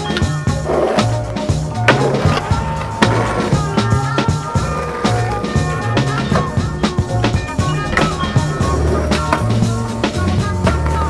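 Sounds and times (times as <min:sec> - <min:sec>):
music with steady beat: 0:00.0 - 0:11.0
skateboard clack: 0:00.0 - 0:11.0
skateboard wheels rolling on asphalt: 0:00.0 - 0:11.0.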